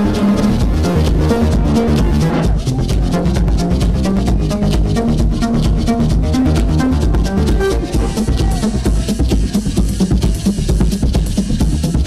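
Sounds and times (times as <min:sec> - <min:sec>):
electronic music over a pa: 0:00.0 - 0:12.0
heavy bass line: 0:00.0 - 0:12.0.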